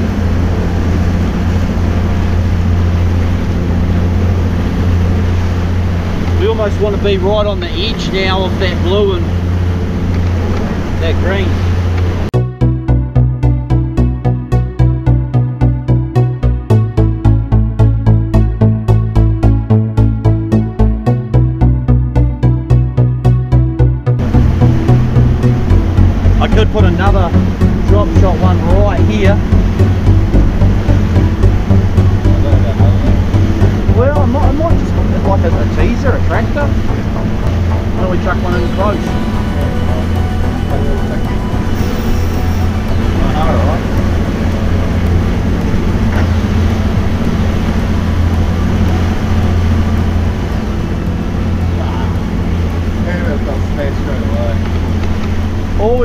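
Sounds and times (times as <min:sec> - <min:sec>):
wake rushing: 0:00.0 - 0:12.4, 0:24.2 - 0:56.0
outboard motor droning: 0:00.0 - 0:56.0
background music with steady beat: 0:12.3 - 0:56.0.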